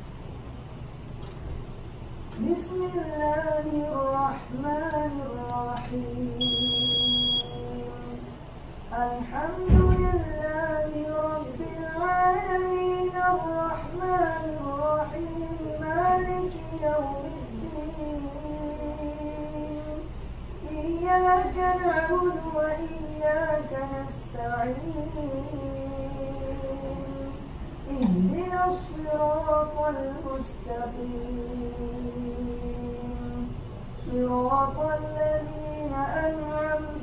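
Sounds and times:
man reciting in a low note: 2.3 - 37.0
high electronic beep: 6.4 - 7.6.

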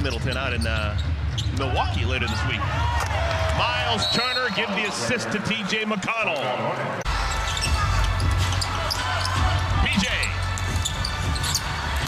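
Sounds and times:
sneaker squeaks: 0.0 - 1.6, 10.2 - 11.8.

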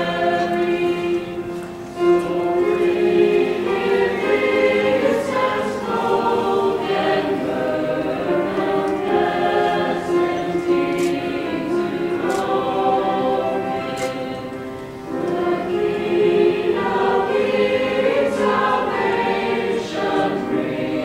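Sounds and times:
chorus singing in harmony: 0.0 - 21.0.

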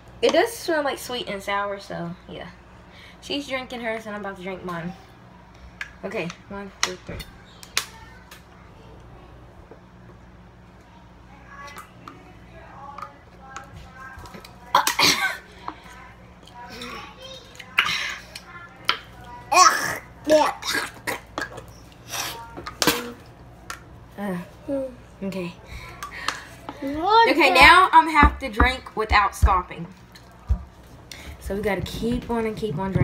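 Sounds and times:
low steady hum: 0.0 - 33.0
girl coughing: 14.7 - 15.5, 19.5 - 21.3.

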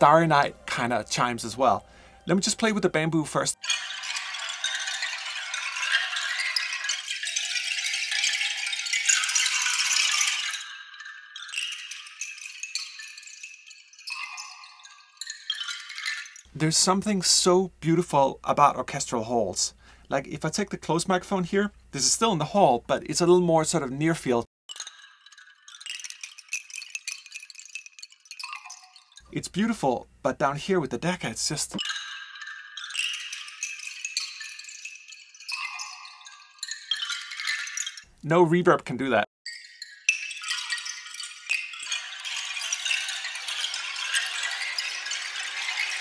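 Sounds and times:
bamboo wind chimes clattering: 0.0 - 46.0.

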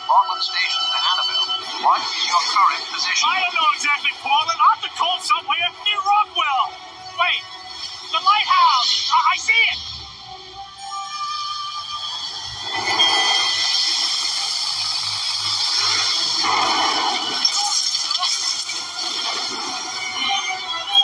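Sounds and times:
film music: 0.0 - 21.0
film sound effects: 0.0 - 21.0.

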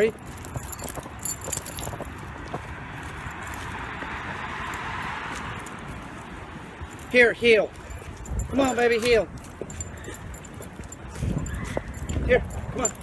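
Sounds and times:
dog collar and leash jingling: 0.0 - 4.4, 5.3 - 13.0
footsteps on concrete: 0.0 - 13.0
car passing: 0.2 - 11.2.

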